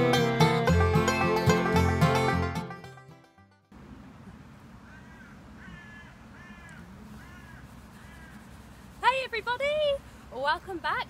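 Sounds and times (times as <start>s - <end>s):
banjo music: 0.0s - 3.7s
faint outdoor hiss: 3.7s - 11.0s
bird calling: 4.8s - 8.8s.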